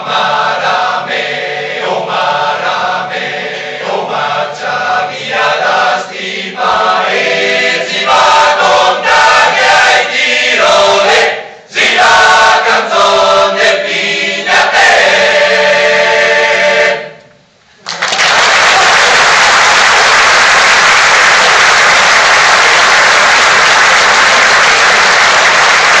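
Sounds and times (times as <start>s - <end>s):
male choir singing: 0.0s - 17.2s
audience applause: 17.8s - 26.0s.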